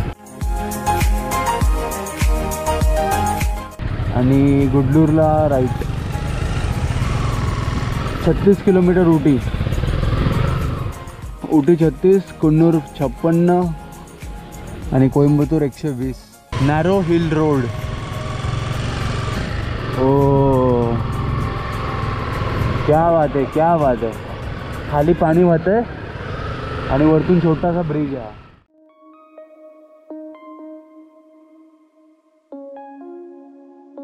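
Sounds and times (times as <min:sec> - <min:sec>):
motorcycle engine low rumble: 0:03.8 - 0:11.2, 0:16.6 - 0:28.6
wind and road noise: 0:03.8 - 0:12.8, 0:16.5 - 0:28.7.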